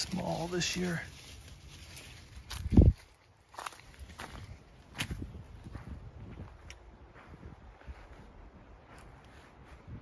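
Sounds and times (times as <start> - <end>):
footsteps crunching on mulch: 0.0 - 10.0.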